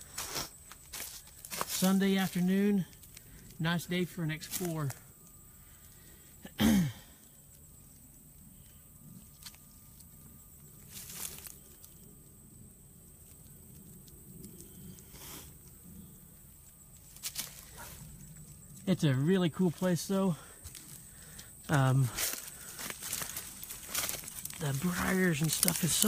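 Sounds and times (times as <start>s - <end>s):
footsteps through dry leaves: 0.0s - 3.4s, 10.7s - 11.9s, 17.0s - 18.1s, 20.6s - 26.0s
twigs snapping: 0.6s - 1.8s, 2.9s - 3.6s, 17.0s - 17.8s, 22.2s - 26.0s.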